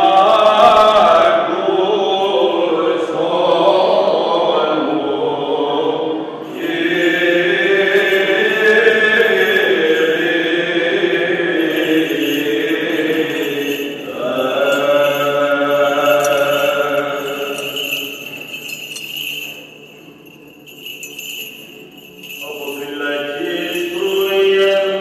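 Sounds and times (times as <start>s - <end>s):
chanting in long held phrases: 0.0s - 18.3s
censer bells and chains jingling: 6.4s - 25.0s.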